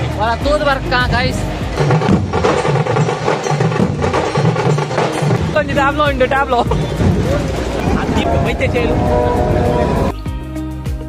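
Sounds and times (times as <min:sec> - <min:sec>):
large barrel drums beating: 0:00.2 - 0:10.1.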